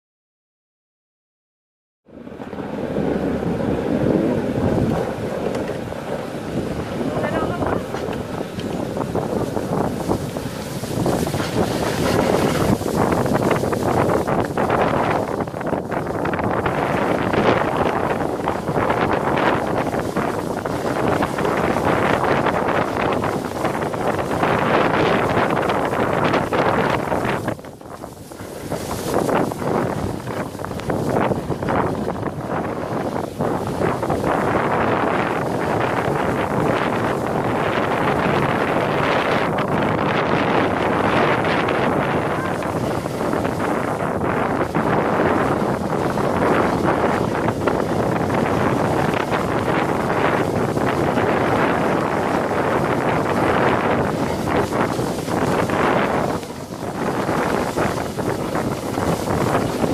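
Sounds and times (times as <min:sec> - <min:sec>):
wind buffeting microphone: 0:02.1 - 0:59.9
sled hissing and scraping on snow: 0:06.2 - 0:59.9.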